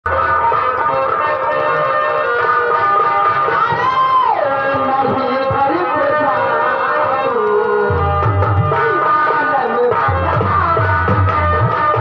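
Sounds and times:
stage music held tones: 0:00.1 - 0:12.0.

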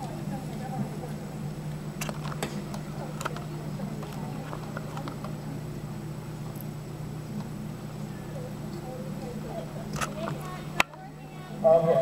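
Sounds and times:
faint indistinct voices: 0:00.0 - 0:12.0
steady low hum: 0:00.0 - 0:12.0.

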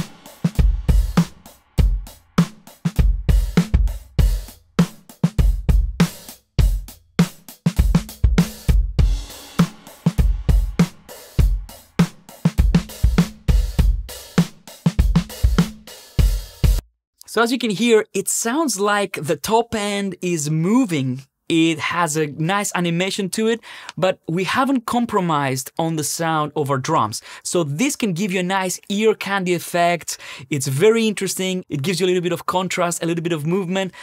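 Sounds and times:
drum loop with panning highs: 0:00.0 - 0:17.5.

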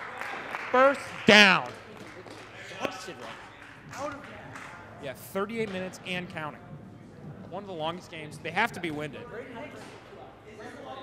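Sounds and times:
echoing voices in a hall: 0:00.0 - 0:11.0
low hall background hum: 0:00.0 - 0:11.0.

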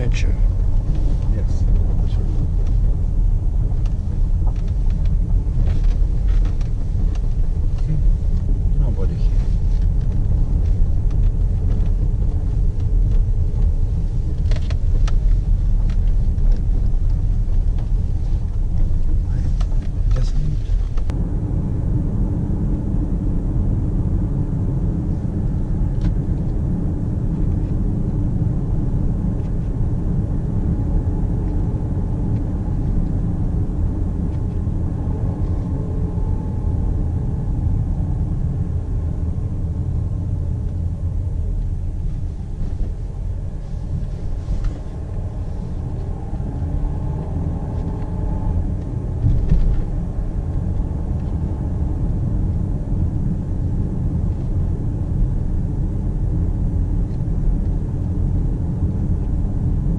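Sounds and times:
car interior road rumble: 0:00.0 - 0:59.9.

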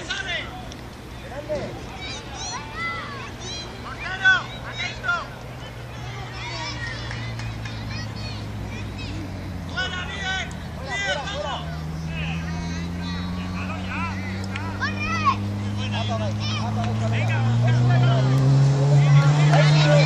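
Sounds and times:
children shouting: 0:01.4 - 0:20.0.

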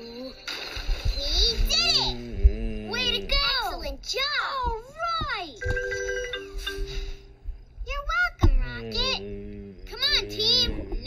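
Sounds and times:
cartoon voices: 0:01.2 - 0:04.3, 0:08.1 - 0:11.0.

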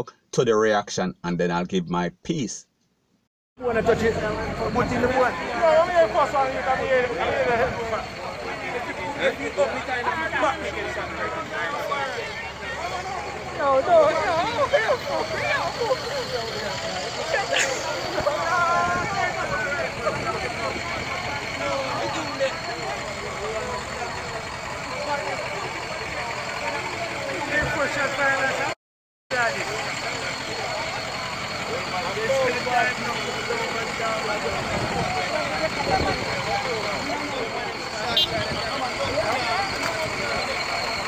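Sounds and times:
people talking: 0:00.0 - 0:02.7, 0:03.6 - 0:41.0
truck engine idling: 0:03.6 - 0:41.0.

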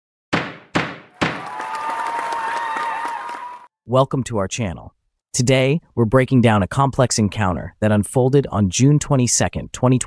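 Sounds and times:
hard hits: 0:00.3 - 0:01.5.

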